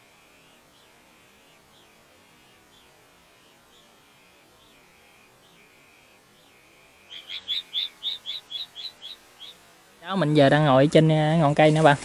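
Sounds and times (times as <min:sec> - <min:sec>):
bird chirps: 0:00.0 - 0:09.8
loud high bird calls: 0:00.0 - 0:09.8.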